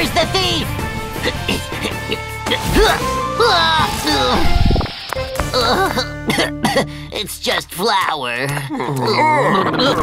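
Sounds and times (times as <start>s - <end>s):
light background music: 0.0s - 8.7s
cartoon character coughing: 5.5s - 6.9s.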